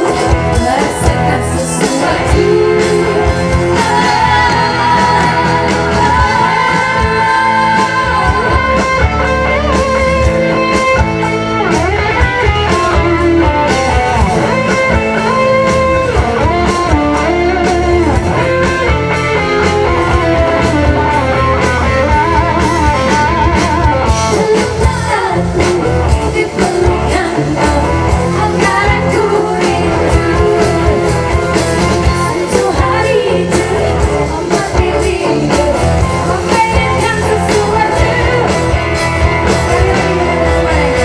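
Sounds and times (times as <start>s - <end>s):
woman singing: 0.0s - 9.2s, 24.3s - 38.8s, 39.7s - 41.0s
live band playing pop: 0.0s - 41.0s.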